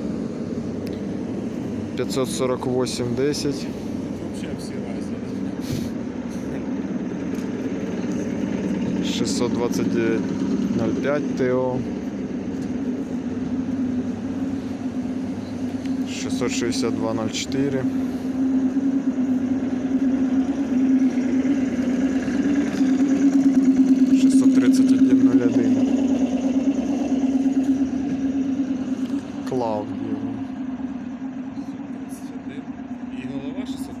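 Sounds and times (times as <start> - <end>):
train running hum: 0.0 - 34.0.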